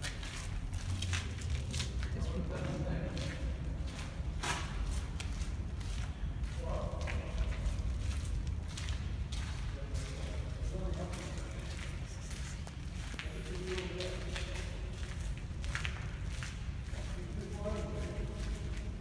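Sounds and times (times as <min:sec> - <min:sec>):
footsteps: 0:00.0 - 0:19.0
faint voices talking: 0:09.3 - 0:15.8.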